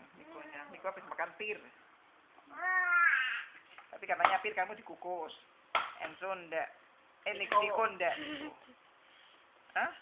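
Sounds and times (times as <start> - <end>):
baby crying: 2.5 - 3.6.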